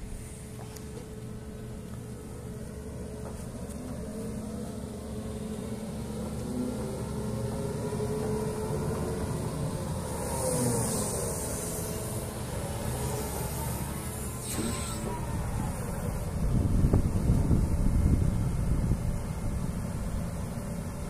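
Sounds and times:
excavator diesel engine running: 0:00.0 - 0:21.0
brief hiss: 0:14.2 - 0:15.3.

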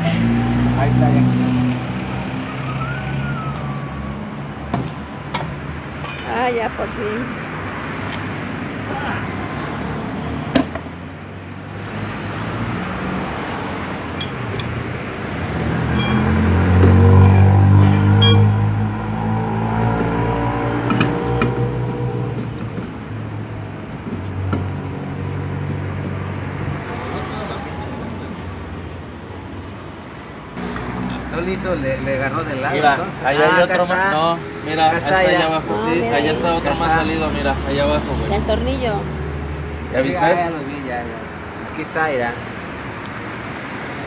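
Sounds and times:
vehicle engine passing: 0:00.0 - 0:04.4, 0:09.4 - 0:28.5
road traffic noise: 0:00.0 - 0:44.0.

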